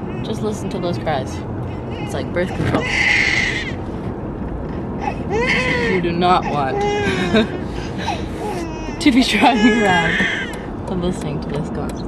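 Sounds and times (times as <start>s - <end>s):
car cabin road noise: 0.0s - 12.0s
baby crying: 2.0s - 3.8s, 5.0s - 10.6s.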